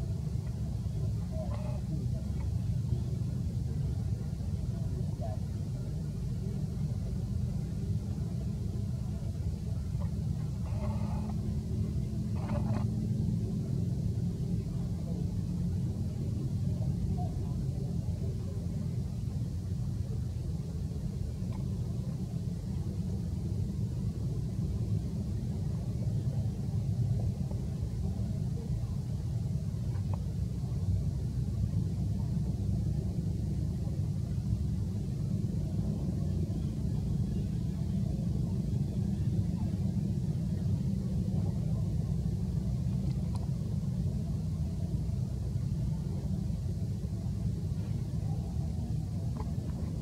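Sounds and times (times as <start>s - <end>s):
steady low rumble: 0.0s - 50.0s.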